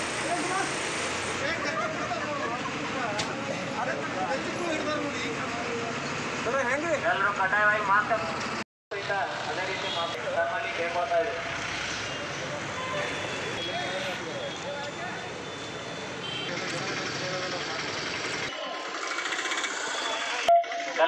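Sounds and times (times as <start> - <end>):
traffic rumble: 0.0 - 20.5.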